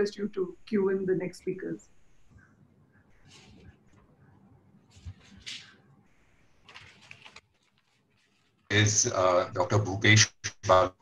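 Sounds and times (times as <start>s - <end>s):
faint high-pitched noise: 8.7s - 10.9s.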